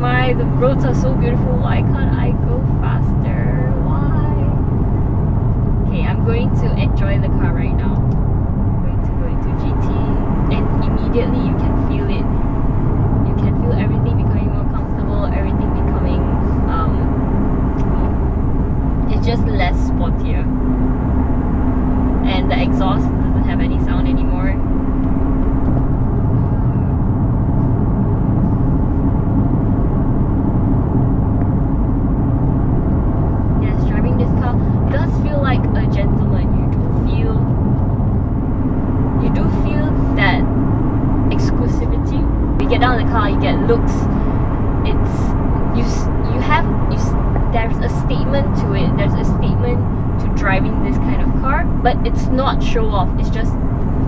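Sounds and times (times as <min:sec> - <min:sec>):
car engine low hum: 0:00.0 - 0:54.0
road and tyre noise: 0:00.0 - 0:54.0.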